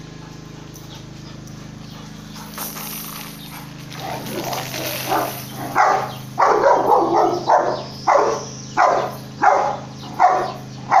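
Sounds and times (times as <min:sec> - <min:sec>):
dog barking: 0:05.0 - 0:11.0.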